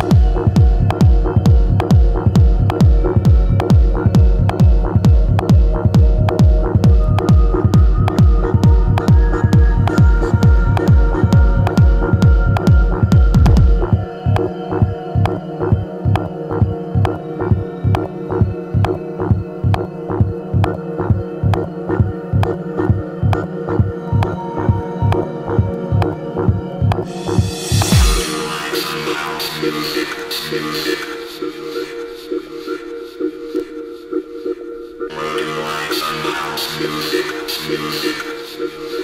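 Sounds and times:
techno kick drum: 0.0 - 14.4, 25.9 - 28.4
held synth tones: 0.0 - 33.3
crisp hi-hats: 27.1 - 31.8.

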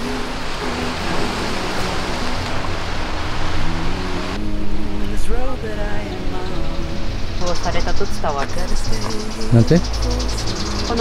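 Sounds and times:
waves washing over rocks: 0.0 - 4.4
faint background music: 0.0 - 11.0.

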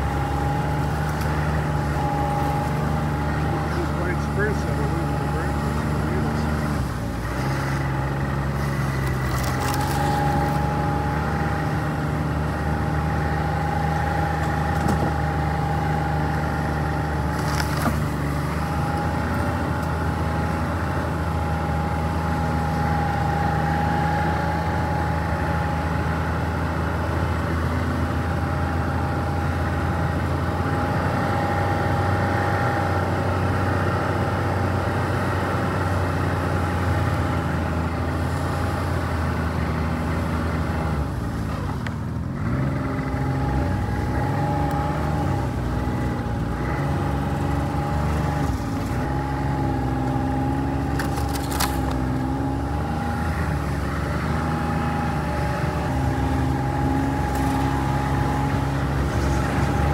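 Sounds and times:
snowmobile engine running: 0.0 - 59.9.

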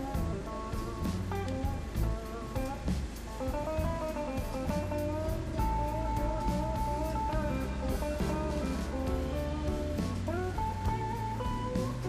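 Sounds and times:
instrumental music with steady beat: 0.0 - 12.0.

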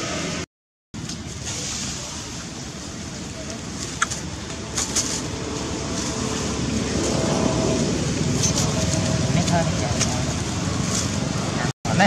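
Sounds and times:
distant traffic: 1.0 - 12.0.

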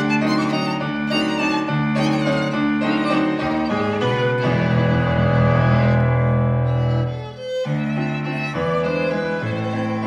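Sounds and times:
stage piano: 0.0 - 10.0
violin: 0.0 - 10.0.

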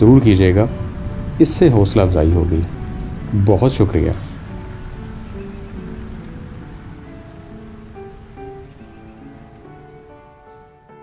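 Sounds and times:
slow sustained keyboard music: 0.0 - 11.0
steady rain falling: 0.0 - 11.0.

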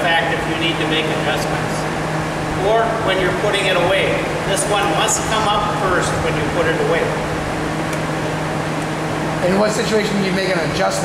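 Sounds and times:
low even hum: 0.0 - 11.0
machine drone: 0.0 - 11.0.

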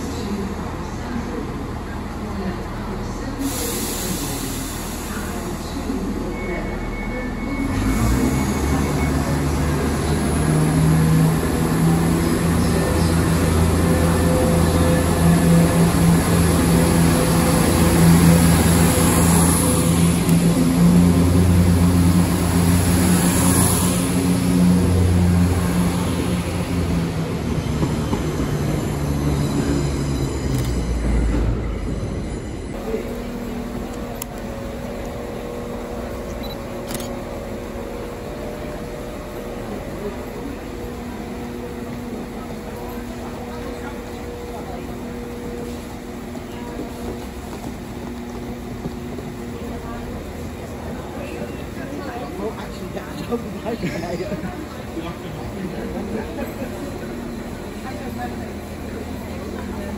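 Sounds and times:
diesel train engines droning: 0.0 - 59.9.

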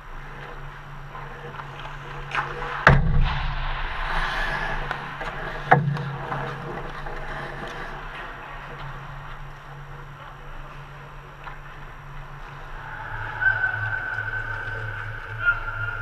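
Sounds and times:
skates scraping ice: 0.0 - 2.9, 3.8 - 16.0
steady low hum: 0.0 - 16.0.

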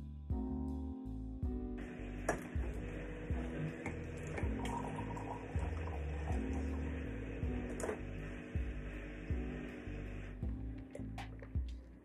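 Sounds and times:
background music with beat: 0.0 - 12.0
water running into cup: 1.8 - 11.6.

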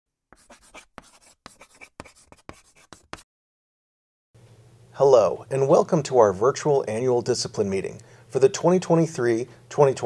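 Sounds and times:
chalk scratching on chalkboard: 0.3 - 3.2.

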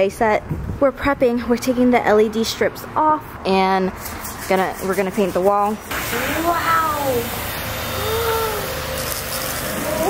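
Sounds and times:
baby cooing: 8.0 - 8.8.

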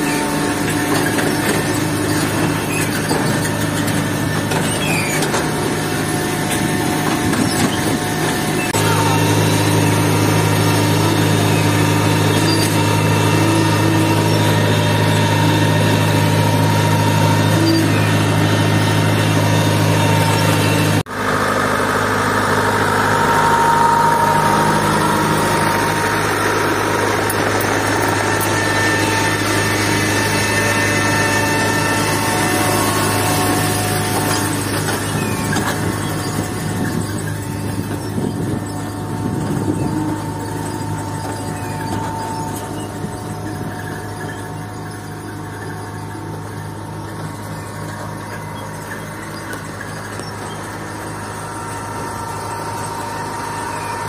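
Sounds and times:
tractor engine humming: 0.0 - 54.0.

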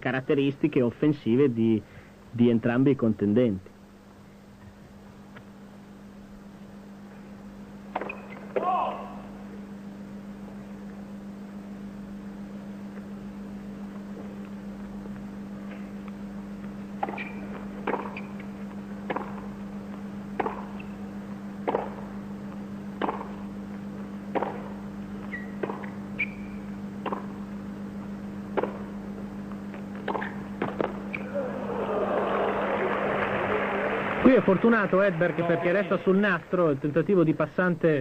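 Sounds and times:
tennis ball struck by rackets: 7.9 - 8.7, 17.0 - 18.4, 19.0 - 19.6, 20.3 - 20.9, 21.6 - 22.1, 23.0 - 23.5, 24.3 - 27.4, 28.5 - 28.9, 30.0 - 31.2
crowd noise: 31.2 - 36.9.

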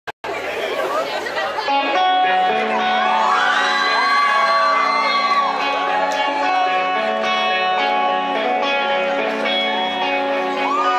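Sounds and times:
crowd chatter in a large hall: 0.2 - 10.9.

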